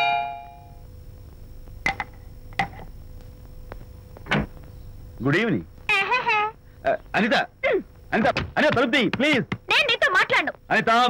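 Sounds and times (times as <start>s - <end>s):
two-tone doorbell chime: 0.0s - 0.7s.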